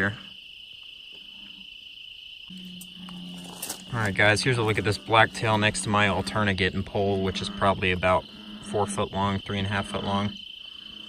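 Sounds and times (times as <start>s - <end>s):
crickets trilling: 0.0s - 11.0s
low steady hum: 2.5s - 11.0s.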